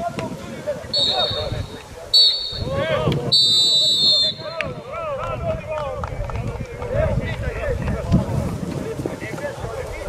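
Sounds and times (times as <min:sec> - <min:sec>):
people shouting: 0:00.9 - 0:04.7
referee's whistle blast: 0:00.9 - 0:04.7.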